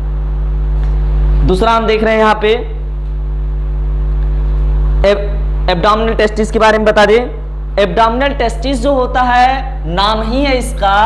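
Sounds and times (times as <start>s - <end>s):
electrical mains hum: 0.0s - 11.0s
person lecturing: 1.4s - 2.9s, 5.0s - 11.0s.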